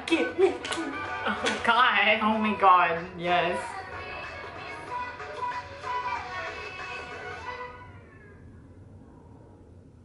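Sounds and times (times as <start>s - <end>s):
low hum: 0.0s - 10.0s.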